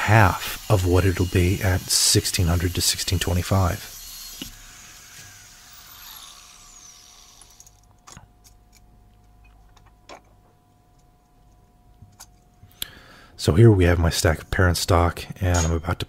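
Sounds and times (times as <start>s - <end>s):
angle grinder spinning down: 0.3s - 7.8s.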